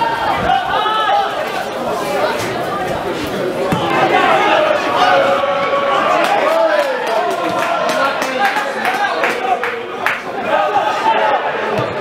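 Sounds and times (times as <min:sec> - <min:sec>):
spectators chattering and calling out: 0:00.0 - 0:12.0.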